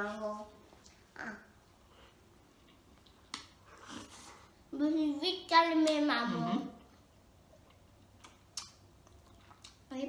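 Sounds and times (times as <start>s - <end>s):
lip smack: 8.2s - 9.8s.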